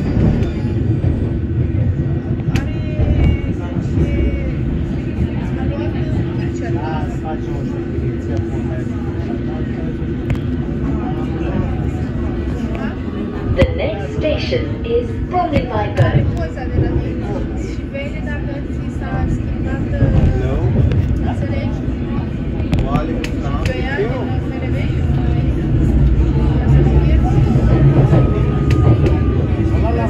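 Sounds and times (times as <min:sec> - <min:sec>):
train wheels rumbling on rails: 0:00.0 - 0:30.0.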